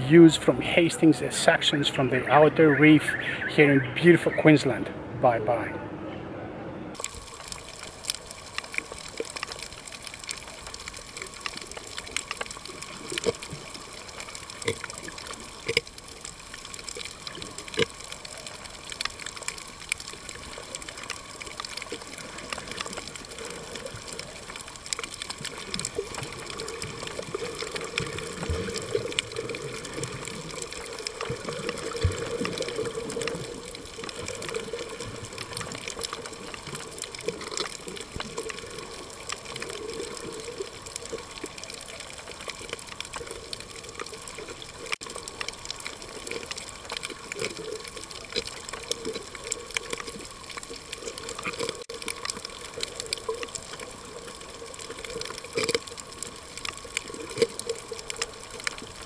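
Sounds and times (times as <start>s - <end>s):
underwater water wash: 6.6s - 59.0s
faint underwater clicks: 7.0s - 59.0s.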